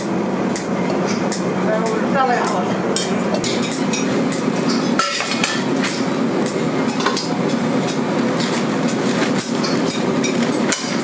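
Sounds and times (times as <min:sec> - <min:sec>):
workshop machinery running: 0:00.0 - 0:11.0
metal pans clinking: 0:02.5 - 0:06.2, 0:06.9 - 0:11.0.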